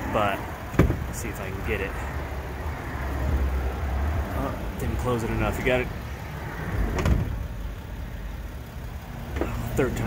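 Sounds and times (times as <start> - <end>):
steady low rumble: 0.0 - 10.0
sliding van door thud: 0.7 - 1.1, 6.9 - 7.4.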